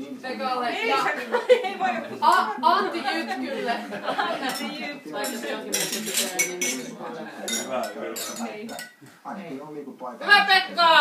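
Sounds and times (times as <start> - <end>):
glasses clinking in a toast: 4.5 - 9.0.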